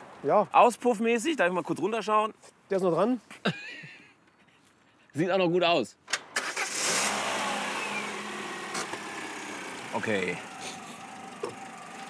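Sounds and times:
car engine idling: 6.7s - 12.0s.

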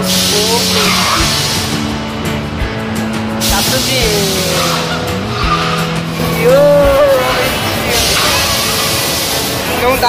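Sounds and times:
amusement ride rushing hiss: 0.0s - 1.8s, 7.2s - 10.0s
faint music: 0.0s - 10.0s.

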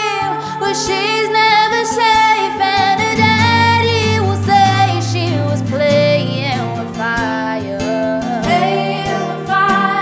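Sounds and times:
acoustic guitar: 0.0s - 10.0s
woman singing pop ballad: 0.0s - 10.0s.

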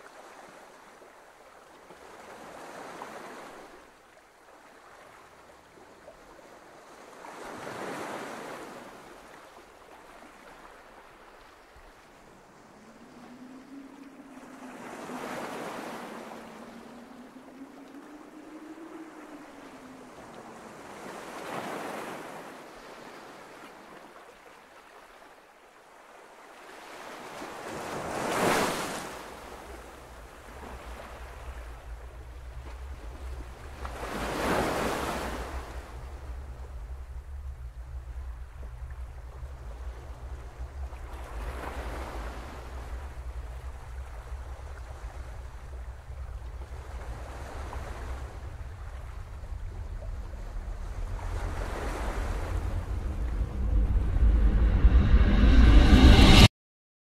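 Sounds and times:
faint wavering tone: 11.8s - 21.8s, 29.1s - 56.5s
rushing surf-like noise: 12.1s - 22.8s, 27.5s - 56.5s
steady low drone: 29.6s - 34.3s, 35.2s - 56.5s.

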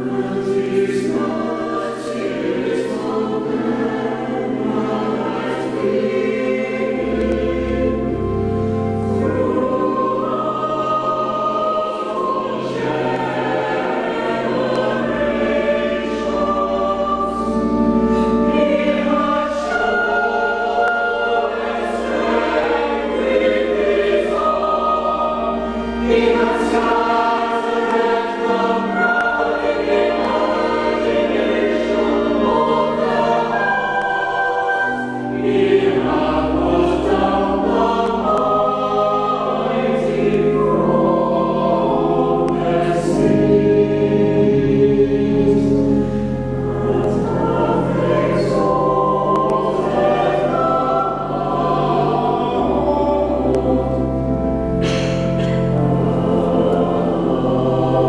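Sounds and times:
church choir singing: 0.0s - 58.0s
low organ notes: 0.0s - 58.0s.

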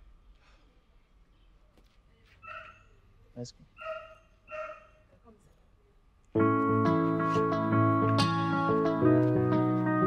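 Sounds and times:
dog barking: 2.4s - 2.9s, 3.8s - 5.1s.

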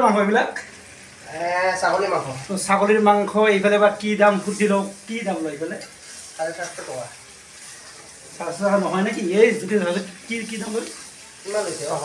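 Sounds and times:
food sizzling in metal pan: 0.0s - 12.0s
men talking: 0.0s - 12.0s
spatula stirring: 4.2s - 8.8s, 9.5s - 12.0s.

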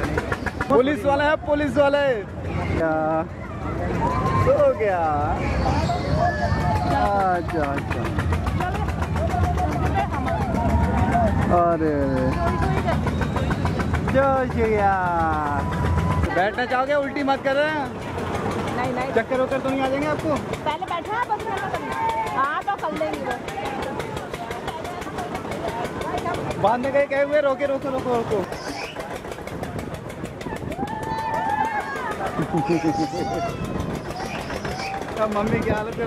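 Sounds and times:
engine running with rapid ticking: 0.0s - 36.0s
people chattering: 0.0s - 36.0s.

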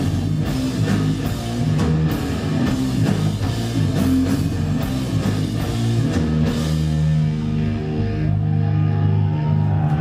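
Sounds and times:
bass guitar low notes: 0.0s - 10.0s
distorted electric guitar: 0.0s - 10.0s.

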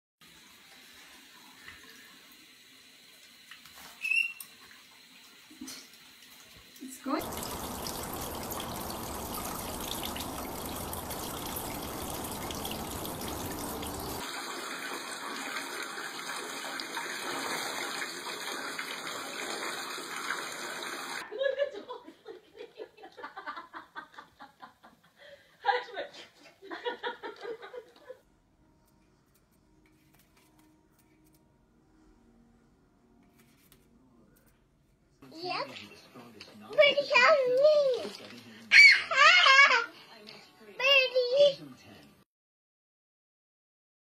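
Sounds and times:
faucet running into sink: 0.2s - 21.2s
water splashing: 7.2s - 21.2s.

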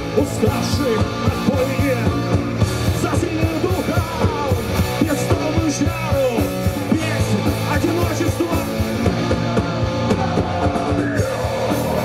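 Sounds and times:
live rock band playing: 0.0s - 12.0s
man singing: 0.2s - 8.7s.

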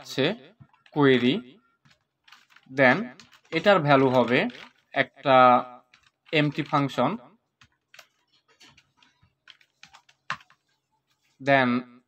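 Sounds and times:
computer keyboard typing: 0.6s - 1.0s, 1.6s - 10.9s.

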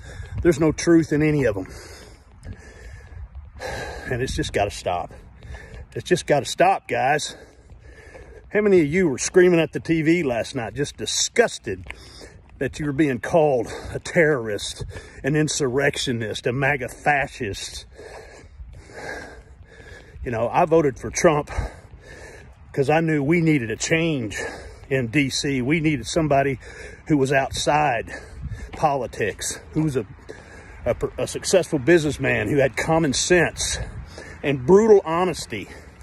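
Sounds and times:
man breathing noisily: 0.0s - 0.4s, 1.6s - 4.4s, 5.1s - 6.0s, 7.2s - 8.5s, 11.8s - 12.6s, 13.6s - 14.0s, 14.8s - 15.2s, 17.8s - 20.3s, 21.5s - 22.8s, 24.3s - 24.9s, 26.5s - 27.1s, 28.0s - 28.8s, 29.6s - 30.9s, 33.7s - 34.9s, 35.6s - 36.0s.

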